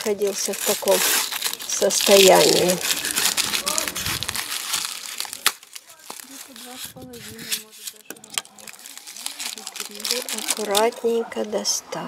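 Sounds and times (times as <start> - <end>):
wrapping rustling and crackling: 0.0 - 11.5.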